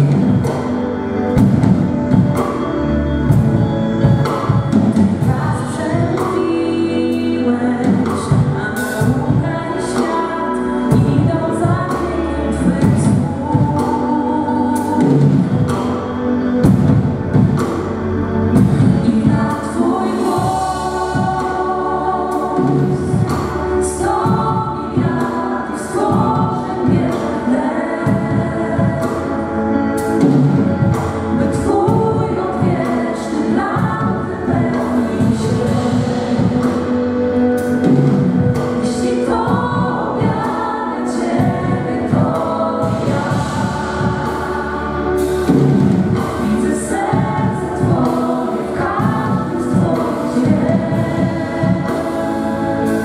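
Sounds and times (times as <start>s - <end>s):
group singing into microphones: 0.0s - 53.0s.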